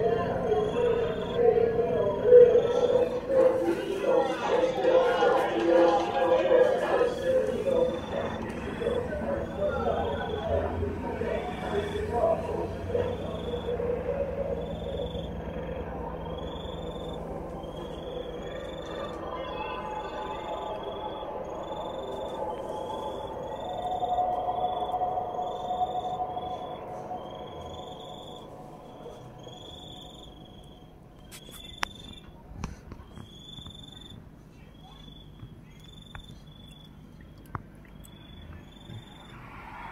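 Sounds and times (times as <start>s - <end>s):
insect chirping: 0.0s - 3.6s, 7.0s - 32.4s, 33.0s - 39.9s
helicopter rotor and engine: 7.3s - 24.0s.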